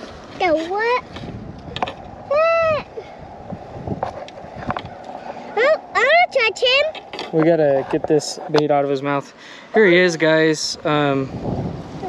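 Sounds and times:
child calling out: 2.3s - 3.1s, 5.6s - 6.9s.

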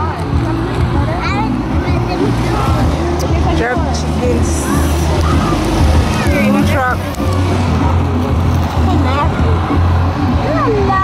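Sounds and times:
loud bass-heavy music: 0.0s - 11.0s
people's voices: 0.0s - 11.0s.

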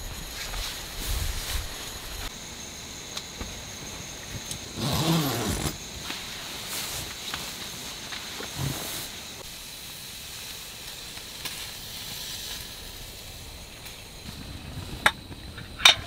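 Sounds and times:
camping stove burner hissing: 0.0s - 16.0s.

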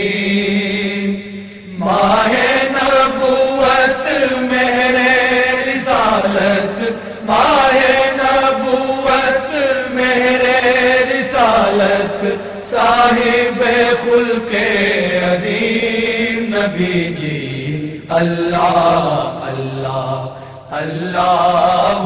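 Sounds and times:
person chanting: 0.0s - 22.0s.

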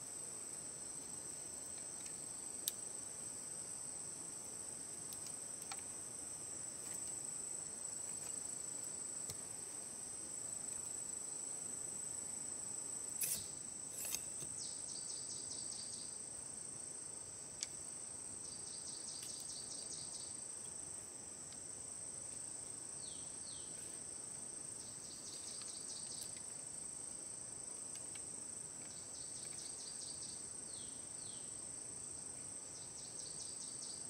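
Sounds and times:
insect chorus: 0.0s - 34.0s.

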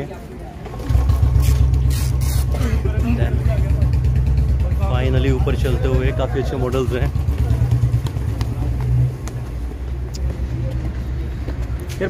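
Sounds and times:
motorcycle engine idling: 0.7s - 9.4s.

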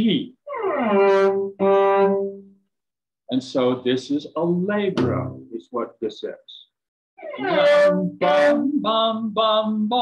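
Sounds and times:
cello note sliding and bowed: 0.5s - 2.5s.

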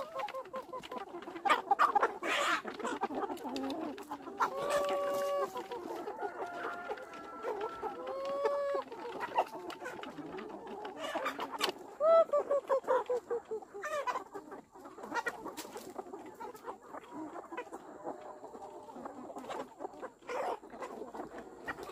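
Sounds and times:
chickens clucking: 0.0s - 21.9s
long drawn-out chicken calls: 0.0s - 21.9s.

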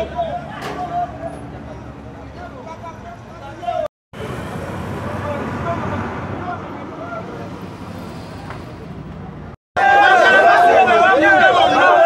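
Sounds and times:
people's voices: 0.0s - 12.0s
street noise: 0.0s - 12.0s.

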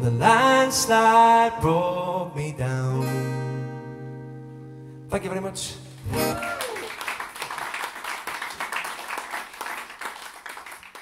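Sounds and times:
acoustic guitar chord ringing: 3.0s - 6.4s.

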